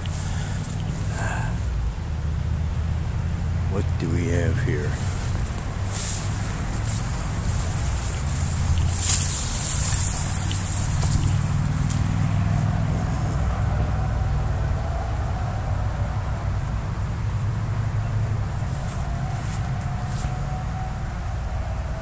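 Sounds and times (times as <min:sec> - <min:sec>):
road traffic rumble: 0:00.0 - 0:22.0
rustling brush and leaves: 0:00.0 - 0:22.0.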